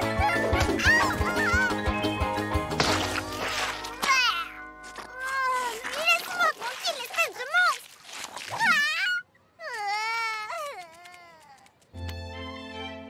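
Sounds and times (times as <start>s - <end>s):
cartoon creature whining and crying: 8.5s - 11.7s.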